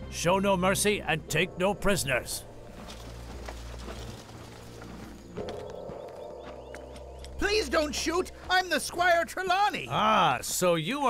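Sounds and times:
low background score: 0:00.0 - 0:11.0
soldiers marching footsteps: 0:02.5 - 0:11.0.

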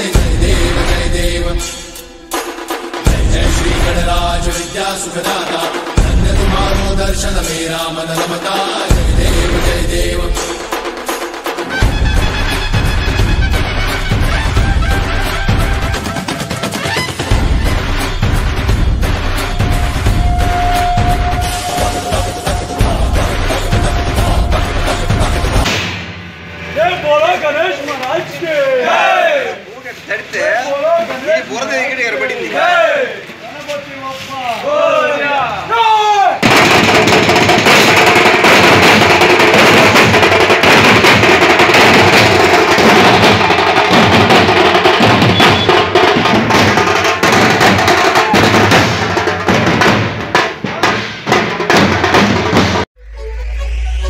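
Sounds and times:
street band drumming: 0:00.0 - 0:26.8, 0:36.4 - 0:52.9
men shouting: 0:19.6 - 0:25.6, 0:28.2 - 0:29.7, 0:32.1 - 0:33.3, 0:34.6 - 0:36.4.

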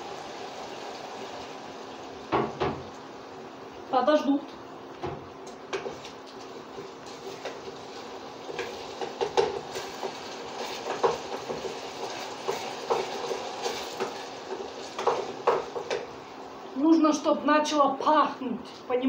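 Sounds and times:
onions frying: 0:00.0 - 0:17.3.

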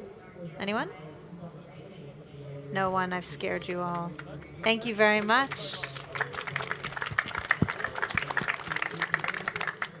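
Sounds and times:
audience applauding: 0:05.0 - 0:10.0.

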